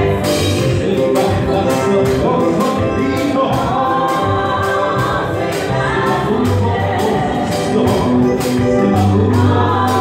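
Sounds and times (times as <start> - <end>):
man singing into a microphone: 0.0 - 4.9, 6.1 - 10.0
band with steady beat: 0.0 - 10.0
voices singing along: 0.0 - 10.0.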